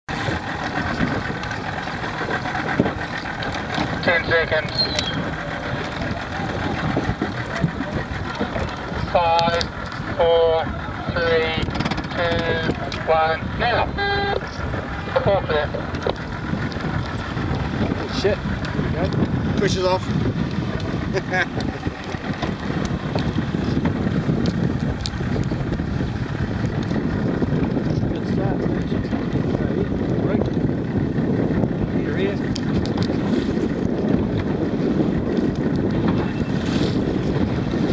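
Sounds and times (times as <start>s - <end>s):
choppy water: 0.0s - 37.9s
wind: 0.0s - 37.9s
boat engine idling: 0.1s - 37.9s.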